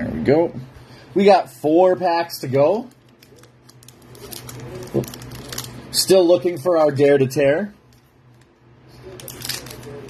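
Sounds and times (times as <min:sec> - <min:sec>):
foil wrapper crinkling and tearing: 0:02.8 - 0:06.0, 0:07.9 - 0:10.0.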